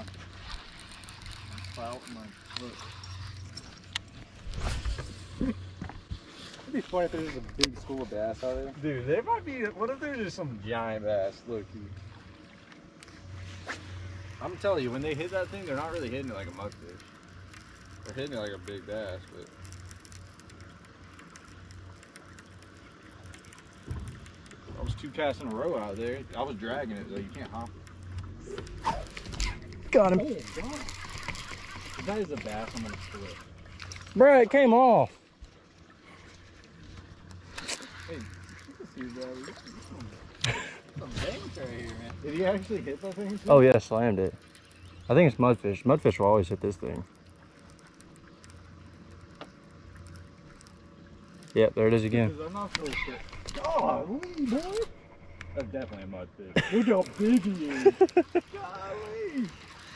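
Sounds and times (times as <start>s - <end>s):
fishing reel clicking: 0.0s - 4.2s, 14.2s - 34.2s, 41.7s - 55.6s, 56.9s - 59.9s
low hum: 0.0s - 59.9s
low steady background noise: 0.0s - 59.9s.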